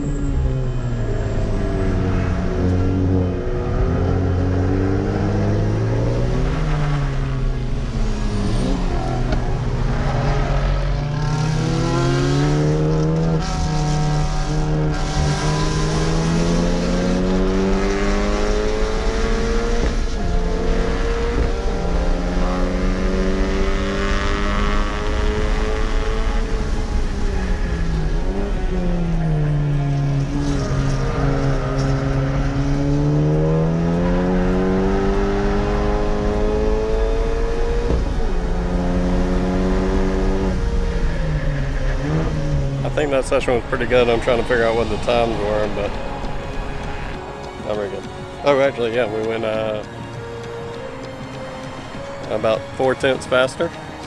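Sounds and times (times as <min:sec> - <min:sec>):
car engine revving through gears: 0:00.0 - 0:54.0.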